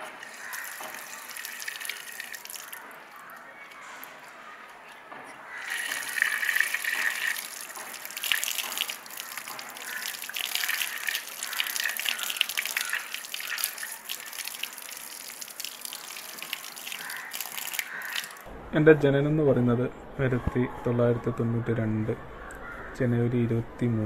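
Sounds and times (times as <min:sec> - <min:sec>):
water gushing from a tap: 0:00.0 - 0:03.4, 0:05.5 - 0:18.5
water splashing on ground: 0:00.0 - 0:04.2, 0:05.5 - 0:18.5.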